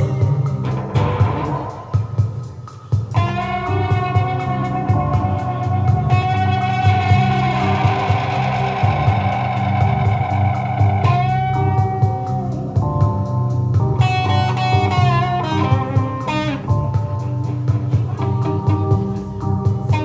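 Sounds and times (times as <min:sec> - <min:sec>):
bass: 0:00.0 - 0:20.0
drums: 0:00.0 - 0:20.0
lead electric guitar: 0:00.0 - 0:20.0.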